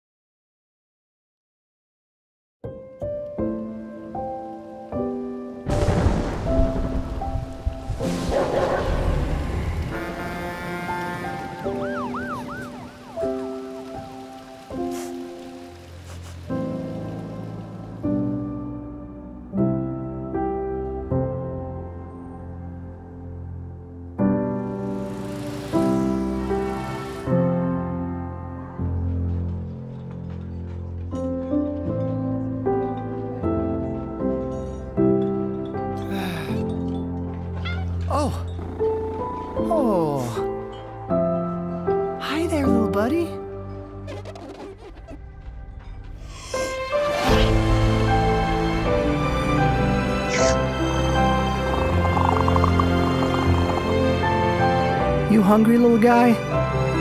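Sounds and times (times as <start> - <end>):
soft slow film-score music: 2.7 - 57.0.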